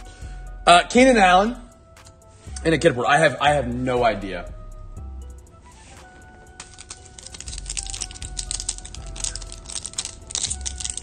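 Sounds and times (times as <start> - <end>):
foil pack crinkling and tearing: 6.6 - 11.0.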